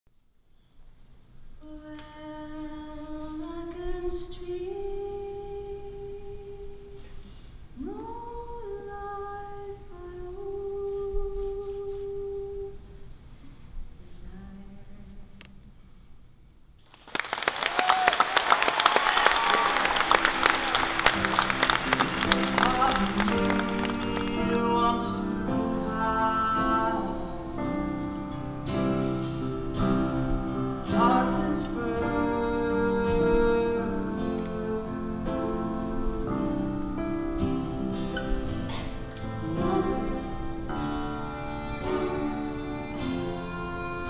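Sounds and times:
woman singing unaccompanied: 1.6 - 7.2, 7.8 - 13.2, 14.0 - 15.6, 22.4 - 28.3, 30.0 - 37.4, 39.3 - 44.0
audience applause: 16.9 - 24.6
acoustic instruments playing: 18.3 - 44.0.

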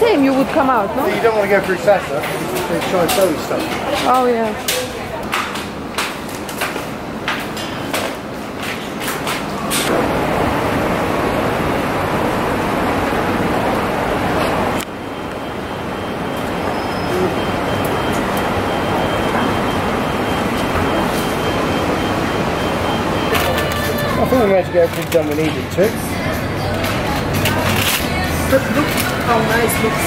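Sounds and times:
city street traffic: 0.0 - 30.0.

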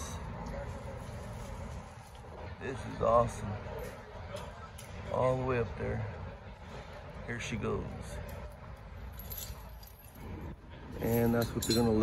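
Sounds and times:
metallic clinking of rigging chain: 9.0 - 10.3, 10.9 - 12.0.

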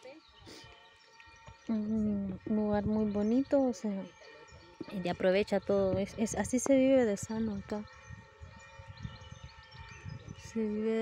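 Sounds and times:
wind rumble on microphone: 0.2 - 11.0.

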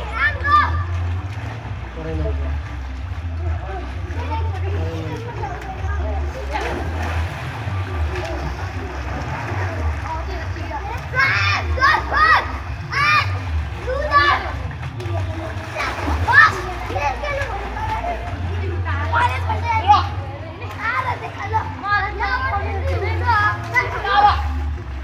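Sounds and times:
children shouting: 0.0 - 1.1, 10.9 - 24.7
low hum: 0.0 - 25.0
water splashing: 0.0 - 25.0.

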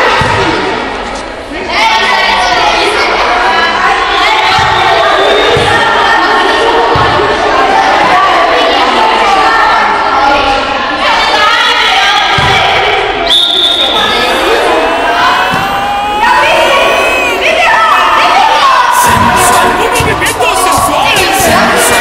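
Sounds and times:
children shouting and cheering: 13.8 - 22.0.

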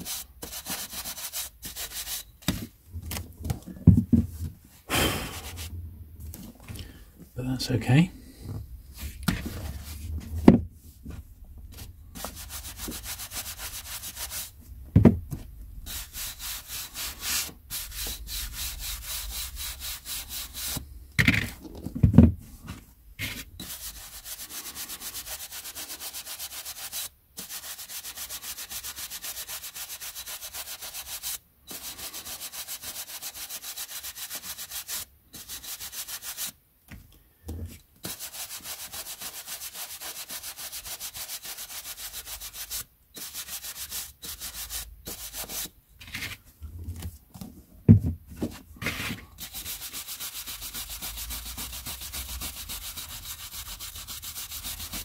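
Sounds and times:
bristle brush scrubbing book edges: 0.0 - 2.6, 11.1 - 14.6, 15.8 - 21.5, 22.6 - 36.6, 38.0 - 46.4, 48.8 - 55.0
thumps: 14.7 - 15.7.

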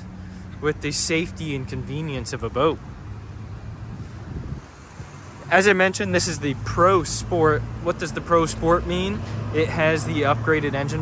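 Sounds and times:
wind on microphone: 3.6 - 5.4.

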